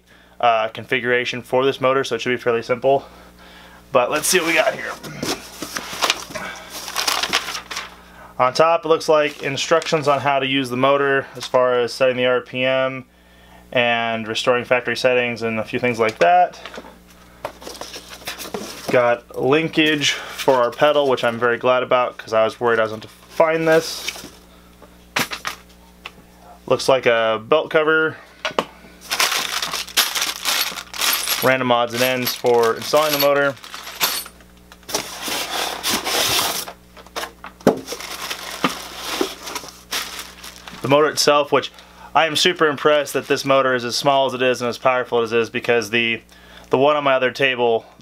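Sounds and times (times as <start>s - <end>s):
packing material rustling: 4.2s - 7.9s, 29.0s - 41.2s.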